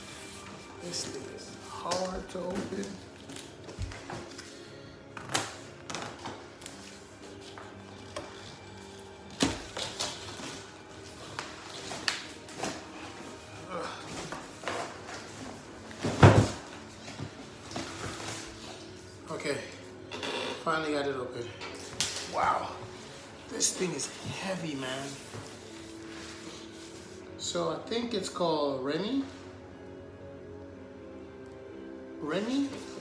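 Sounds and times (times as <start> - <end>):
cardboard thump: 16.0 - 16.7.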